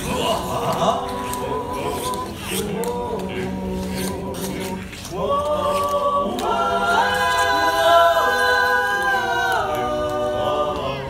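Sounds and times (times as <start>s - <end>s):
men singing close harmony: 0.0s - 11.0s.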